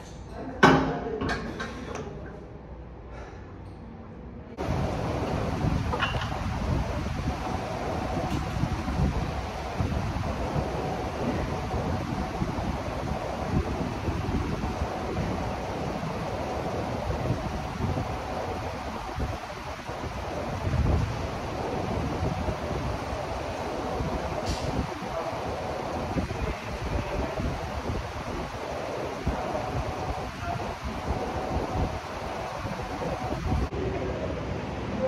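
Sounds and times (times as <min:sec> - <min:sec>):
fan airflow buffeting microphone: 0:00.0 - 0:35.0
faint steady hum: 0:01.9 - 0:35.0.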